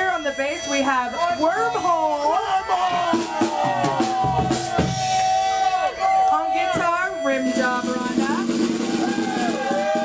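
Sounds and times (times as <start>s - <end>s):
electric guitars ringing: 0.0s - 4.1s
voices shouting: 1.6s - 10.0s.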